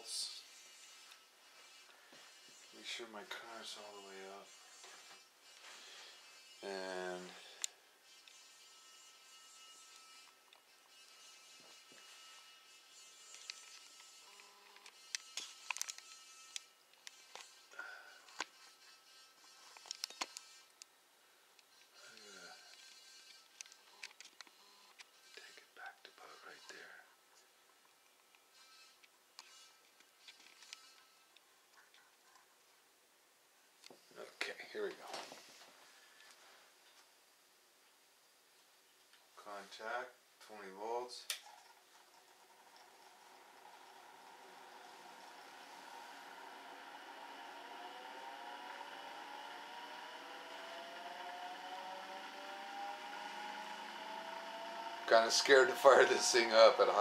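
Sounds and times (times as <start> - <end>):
high-pitched electrical whine: 0.0 - 20.8, 21.7 - 27.0, 43.0 - 57.0.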